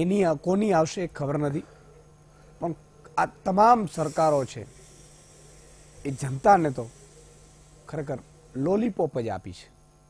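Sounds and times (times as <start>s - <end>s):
faint hiss and low hum: 0.0s - 10.0s
man speaking: 6.1s - 7.0s.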